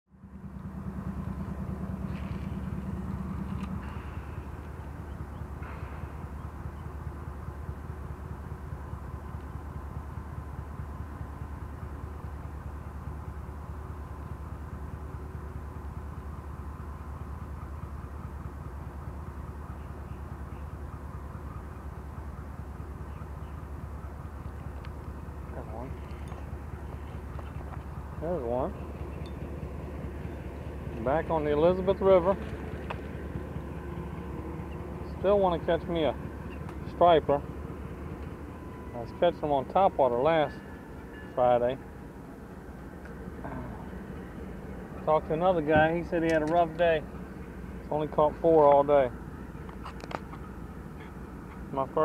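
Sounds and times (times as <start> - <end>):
hum: 0.1 - 39.2
engine rumble pulsing: 0.1 - 52.0.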